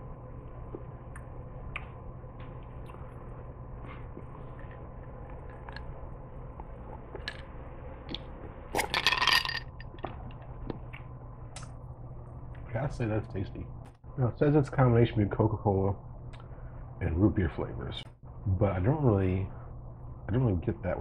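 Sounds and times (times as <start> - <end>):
faint clicks and mouth sounds: 0.5 - 8.9, 9.8 - 12.7, 16.2 - 16.6.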